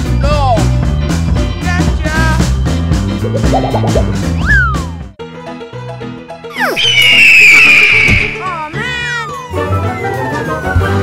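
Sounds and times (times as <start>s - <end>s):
children's background music: 0.0s - 7.1s, 8.1s - 11.0s.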